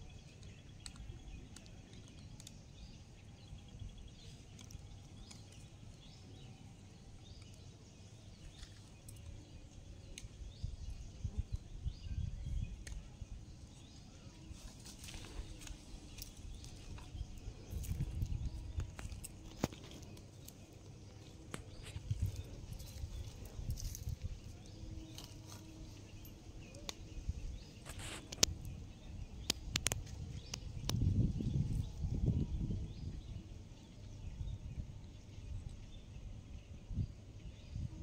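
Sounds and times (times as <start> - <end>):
low uneven fire rumble: 14.4 - 38.0
wood fire snapping and crackling: 29.5 - 31.0.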